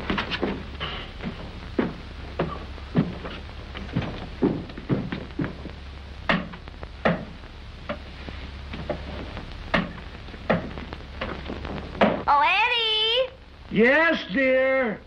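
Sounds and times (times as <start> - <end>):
footsteps on wooden stairs: 0.0 - 8.0
low hum: 0.0 - 14.3.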